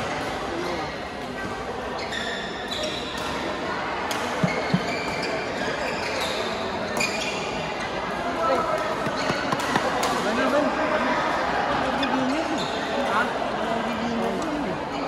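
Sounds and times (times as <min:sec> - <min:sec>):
shoes squeaking on court floor: 0:01.9 - 0:03.5, 0:04.4 - 0:10.2
players' voices echoing: 0:03.2 - 0:15.0
rackets striking shuttlecocks: 0:08.6 - 0:10.3.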